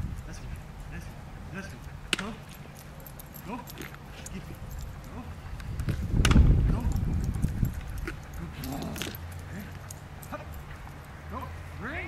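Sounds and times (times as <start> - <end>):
steady low rumble: 0.0 - 11.9.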